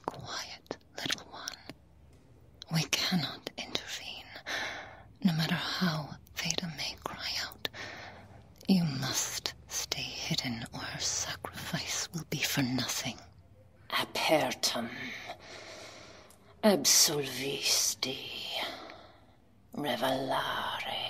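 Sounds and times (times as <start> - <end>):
woman whispering a chant: 0.0 - 1.8, 2.6 - 4.5, 5.1 - 7.8, 8.4 - 15.4, 16.4 - 21.0.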